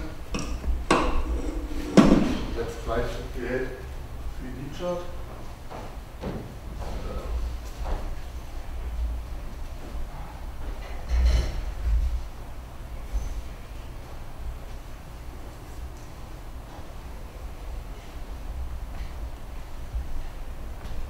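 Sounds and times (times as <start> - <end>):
low room rumble: 0.0 - 21.0
soft knocks and thumps: 0.4 - 2.6.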